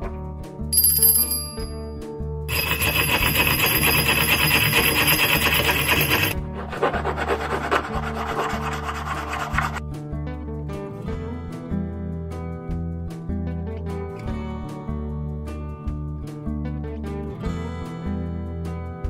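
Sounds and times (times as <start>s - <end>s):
hand bell ringing: 0.8s - 6.4s
saw rasping through metal: 2.5s - 9.8s.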